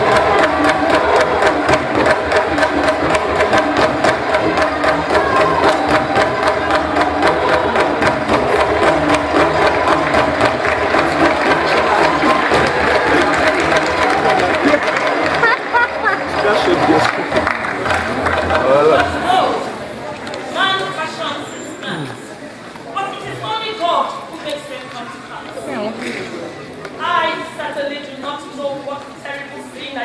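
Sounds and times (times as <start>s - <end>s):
group of voices chanting: 0.0s - 15.4s
handclaps: 0.0s - 19.3s
drums beating: 0.0s - 20.0s.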